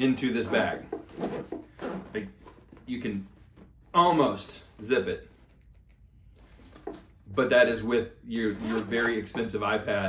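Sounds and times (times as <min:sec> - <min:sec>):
zipper being pulled: 0:00.4 - 0:02.6, 0:08.4 - 0:09.3.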